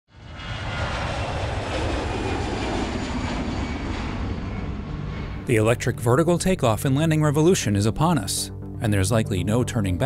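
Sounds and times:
aircraft engine noise: 0.1 - 10.0.

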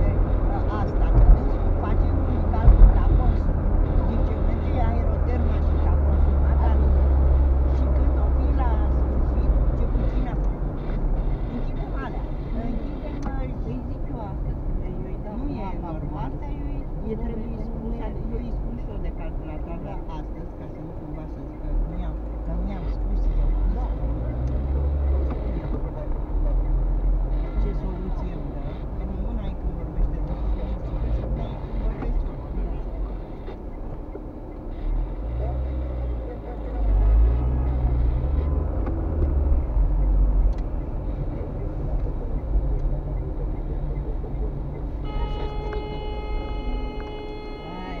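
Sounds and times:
car engine and road rumble: 0.0 - 48.0
steady multi-pitched hum: 0.0 - 48.0.

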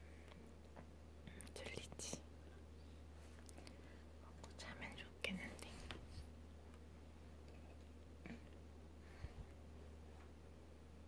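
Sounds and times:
low steady hum: 0.0 - 11.0
breathy whisper-like sounds: 3.3 - 6.3.

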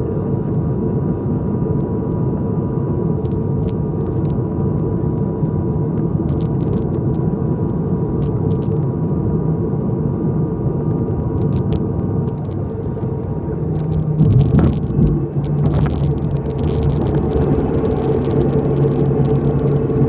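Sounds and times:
turboprop cabin drone: 0.0 - 20.0
propeller hum: 0.1 - 20.0.

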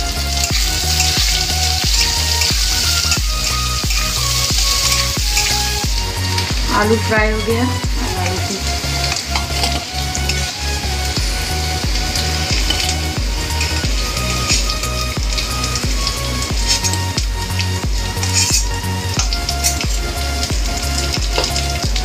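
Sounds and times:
potatoes sizzling in hot oil: 0.0 - 22.0.

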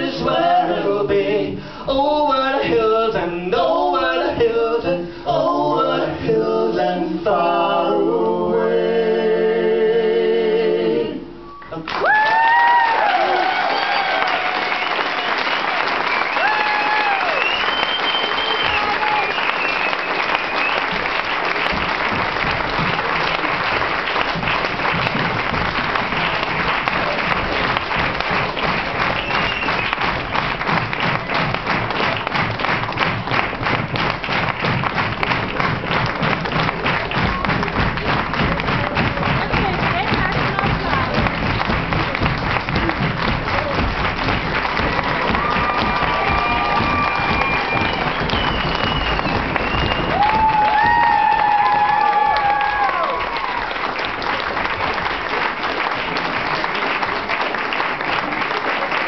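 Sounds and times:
audience applauding: 11.6 - 59.0
rhythmic clapping: 11.6 - 59.0
crowd cheering: 11.7 - 33.9, 34.5 - 59.0.

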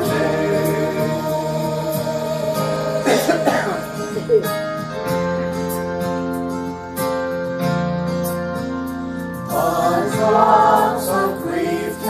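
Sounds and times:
congregation singing a hymn: 0.0 - 4.4, 9.4 - 12.0
person coughing: 3.0 - 4.6.

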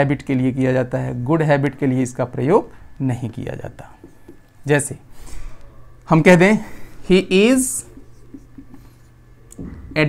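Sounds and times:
marker pen writing on whiteboard: 3.8 - 4.6, 7.2 - 9.1.

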